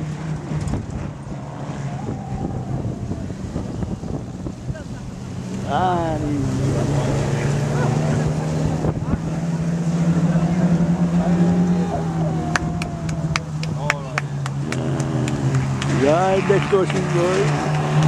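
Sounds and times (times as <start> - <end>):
race car engines revving: 0.0 - 18.0.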